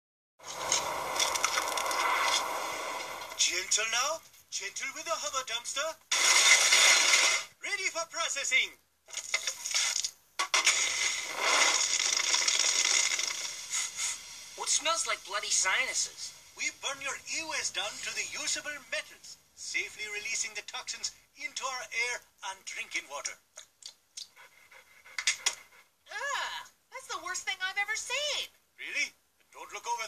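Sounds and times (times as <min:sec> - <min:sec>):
fire crackling: 0:00.4 - 0:03.8, 0:06.1 - 0:07.5, 0:09.0 - 0:19.2
dog panting: 0:24.2 - 0:26.0.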